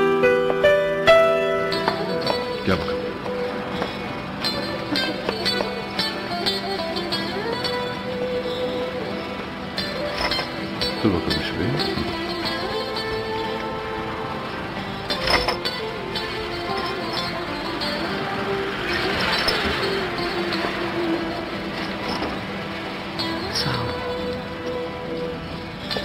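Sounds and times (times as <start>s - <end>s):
music with slow held notes: 0.0s - 26.0s.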